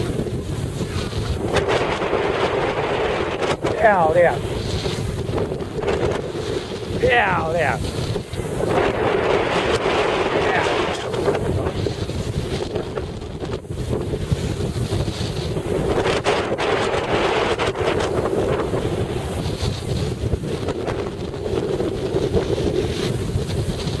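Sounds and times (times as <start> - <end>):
strong wind buffeting microphone: 0.0 - 24.0.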